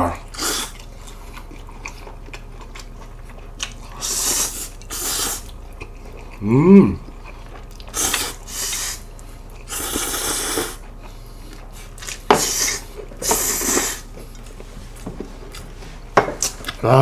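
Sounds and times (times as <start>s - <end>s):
slurping noodles: 0.3s - 1.2s, 3.9s - 5.5s, 7.9s - 9.0s, 9.7s - 10.8s, 11.7s - 14.1s.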